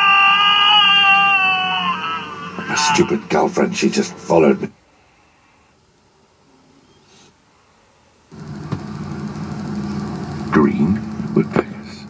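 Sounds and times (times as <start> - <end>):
car engine humming through speakers: 8.3 - 12.0.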